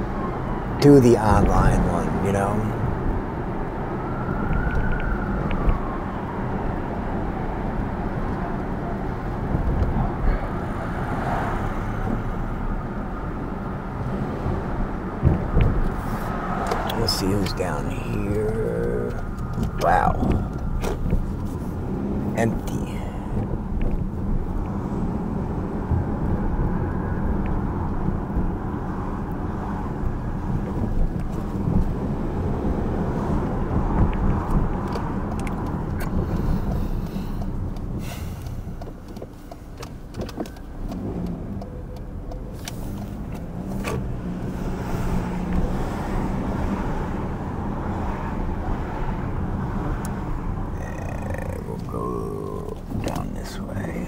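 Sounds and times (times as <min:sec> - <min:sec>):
car engine and tyres rumbling: 0:00.0 - 0:54.0.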